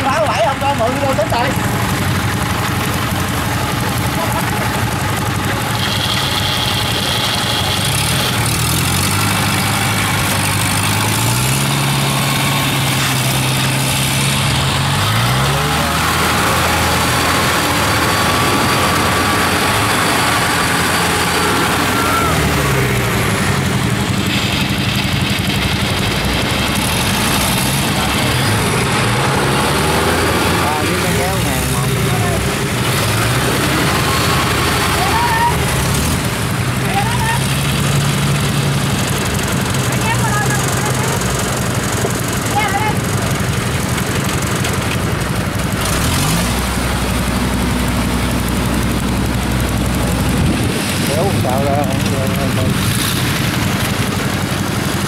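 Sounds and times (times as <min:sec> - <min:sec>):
diesel engine revving: 0:00.0 - 0:55.0.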